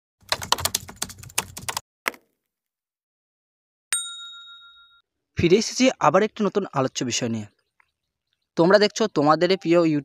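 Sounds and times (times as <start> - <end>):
keyboard clicks: 0.2 - 2.2
bell ding: 3.9 - 5.0.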